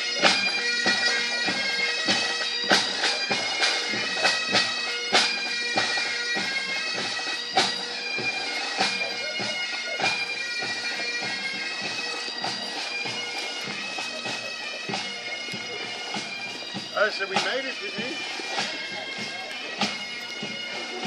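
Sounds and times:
bagpipes playing a march: 0.0 - 21.0
regular drum strikes: 2.0 - 21.0.

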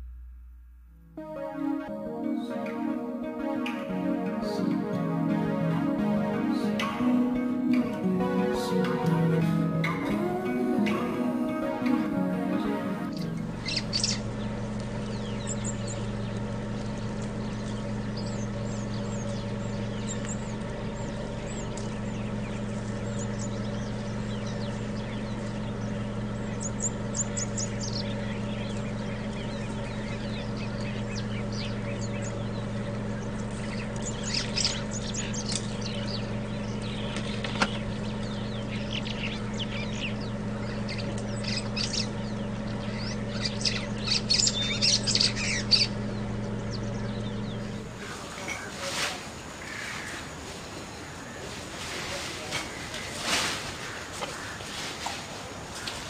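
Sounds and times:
steady low hum: 0.0 - 56.0
birds chirping: 1.2 - 56.0.

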